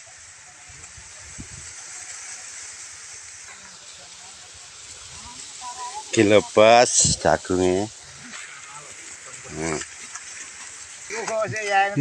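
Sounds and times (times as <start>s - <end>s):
wind rustling through dry stalks: 0.0s - 12.0s.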